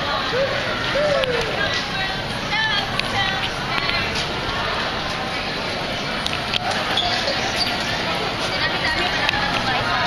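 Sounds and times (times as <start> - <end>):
people talking indistinctly: 0.0 - 10.0
footsteps on concrete: 2.6 - 7.0.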